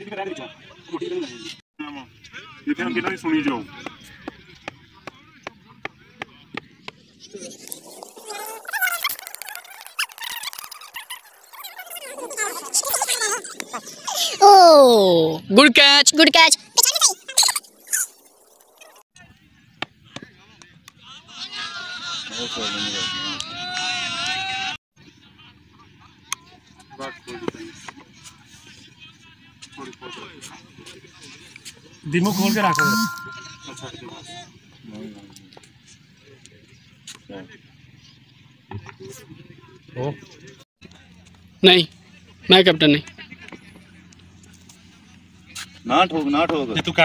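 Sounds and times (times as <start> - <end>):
outdoor background noise: 0.0 - 47.0
man's voice: 32.3 - 33.9.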